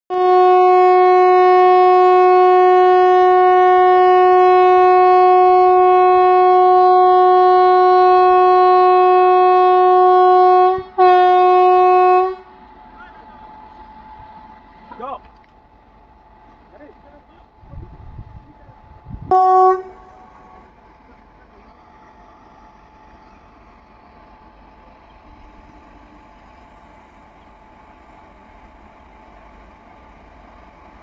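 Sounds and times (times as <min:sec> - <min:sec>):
locomotive air horn blast: 0:00.1 - 0:12.6, 0:19.2 - 0:20.8.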